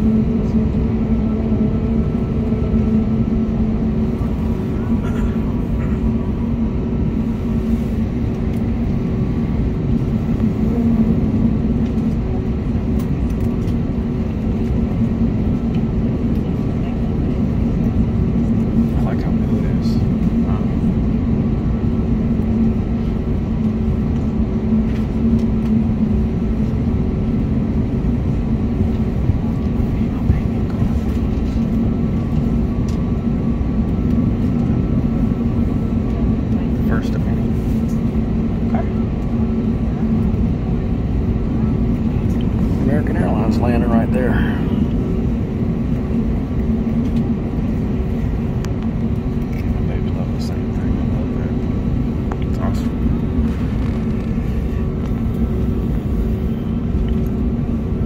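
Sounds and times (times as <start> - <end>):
airliner cabin rumble and hum: 0.0 - 58.0.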